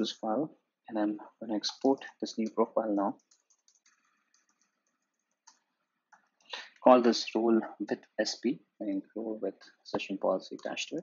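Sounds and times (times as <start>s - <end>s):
computer keyboard typing: 1.6s - 7.0s, 10.6s - 11.0s.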